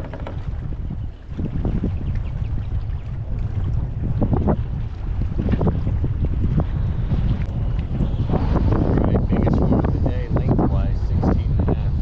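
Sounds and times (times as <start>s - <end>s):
water slapping against kayak hull: 0.0s - 9.5s
strong wind buffeting microphone: 0.0s - 12.0s.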